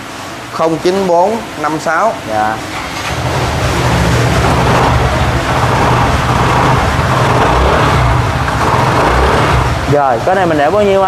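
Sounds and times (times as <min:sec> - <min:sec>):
scooter engine running: 0:03.2 - 0:10.0.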